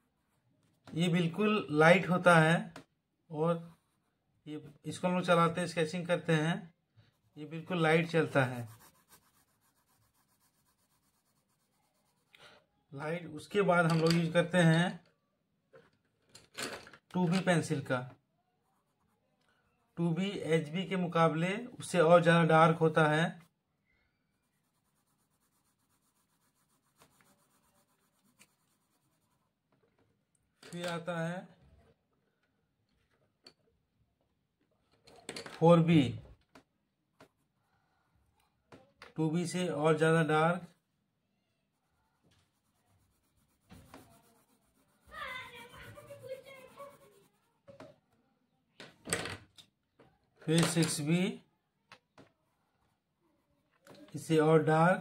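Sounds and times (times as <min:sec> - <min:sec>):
pencil scratching on paper: 0:03.5 - 0:04.2, 0:07.0 - 0:12.6, 0:18.6 - 0:20.5, 0:24.3 - 0:29.7, 0:41.8 - 0:47.7.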